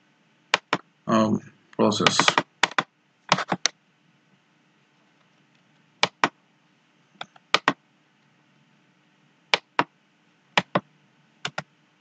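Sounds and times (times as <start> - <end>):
keyboard keys clicking: 7.2 - 7.8, 10.6 - 10.8.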